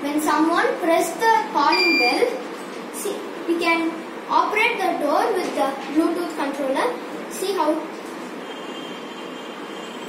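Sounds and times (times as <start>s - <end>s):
thin high whine: 8.4s - 10.0s.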